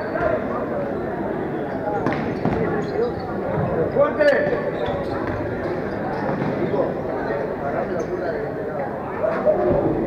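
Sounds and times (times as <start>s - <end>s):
murmur of voices echoing: 0.0s - 10.0s.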